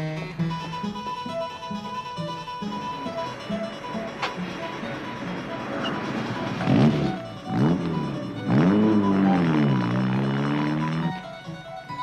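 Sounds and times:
music: 0:00.0 - 0:12.0
sports car engine accelerating: 0:03.1 - 0:11.5.

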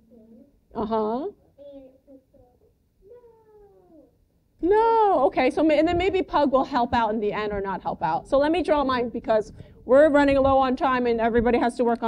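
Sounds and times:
faint child's voice calling: 0:01.6 - 0:04.2.

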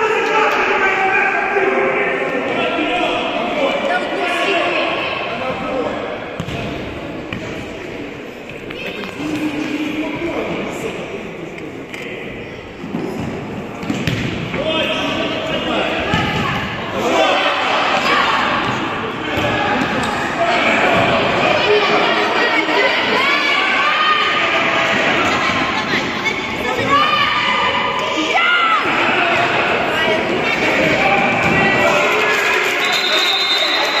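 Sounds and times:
people shouting in a hall: 0:00.0 - 0:06.1, 0:14.5 - 0:34.0.

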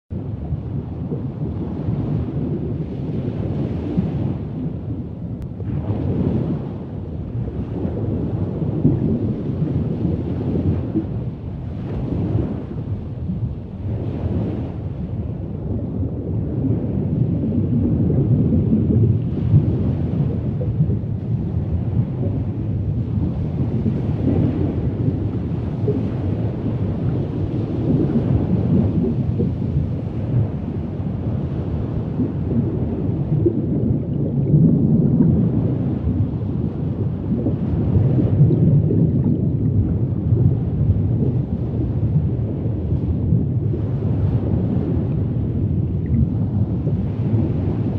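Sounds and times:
low rumbling water: 0:00.1 - 0:47.9.

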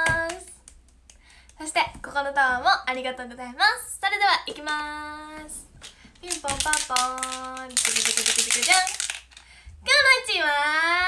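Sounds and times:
woman singing: 0:00.0 - 0:00.6, 0:01.6 - 0:09.1, 0:09.8 - 0:11.0.

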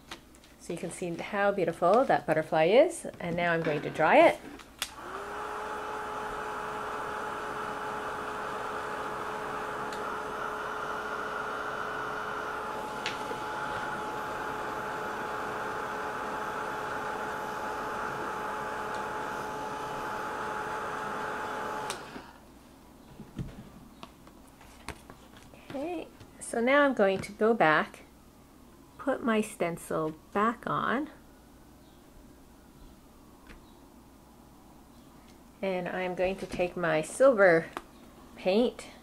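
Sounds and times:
heat tool fan whirring: 0:03.9 - 0:22.5
faint handling sounds: 0:23.0 - 0:26.4.

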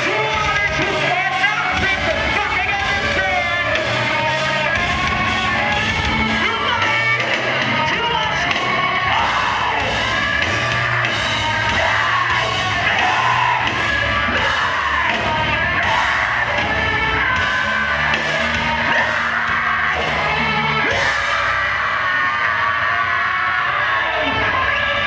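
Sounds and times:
live metal band playing: 0:00.0 - 0:25.0
screamed vocals: 0:08.0 - 0:25.0.

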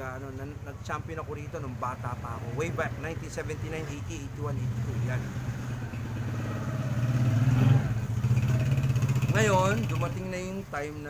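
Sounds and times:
small vehicle engine running: 0:04.8 - 0:10.2.

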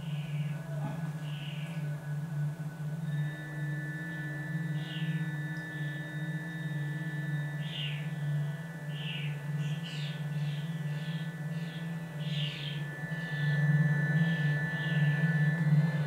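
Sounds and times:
ambient music drone: 0:00.0 - 0:16.0.

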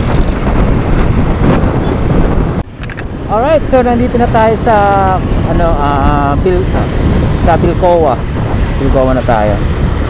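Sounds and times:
road noise: 0:00.0 - 0:10.0
wind rushing over microphone: 0:00.0 - 0:10.0.

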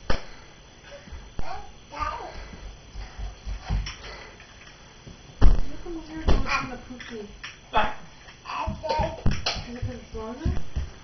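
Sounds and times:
small footsteps on hard floor: 0:01.0 - 0:06.8, 0:08.6 - 0:11.0.

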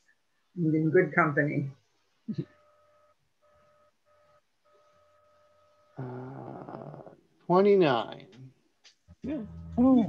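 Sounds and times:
faint steady electronic tone: 0:00.0 - 0:07.1
short vocal sound: 0:06.0 - 0:07.2.

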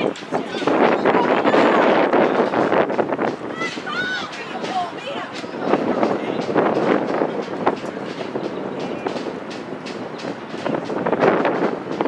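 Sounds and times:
distant voices of players: 0:00.0 - 0:12.0
sharp stick clacks: 0:00.0 - 0:12.0
steady rushing noise: 0:00.0 - 0:12.0.

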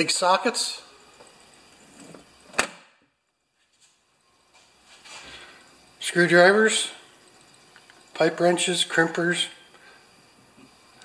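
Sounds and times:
faint rustle of handling: 0:03.5 - 0:05.6.

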